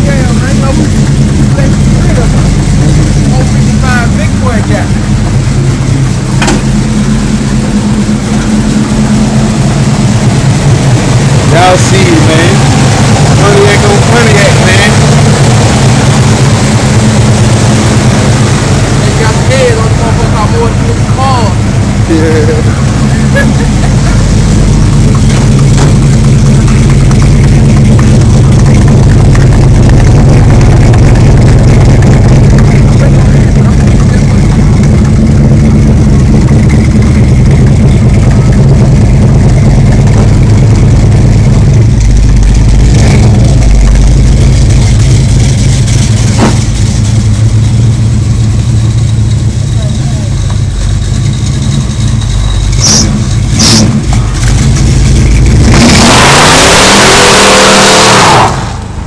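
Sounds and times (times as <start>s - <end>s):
car engine idling: 0.0s - 59.0s.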